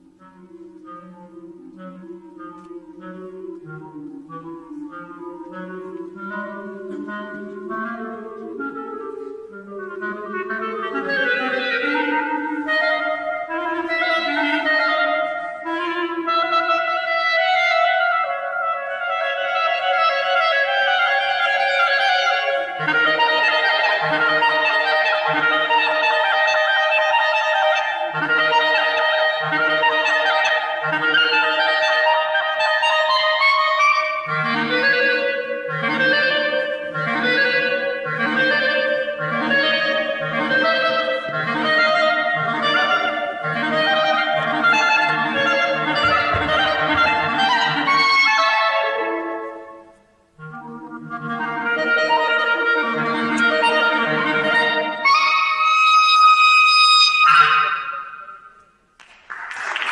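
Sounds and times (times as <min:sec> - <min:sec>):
clarinet slow melody: 0:00.0 - 0:58.9.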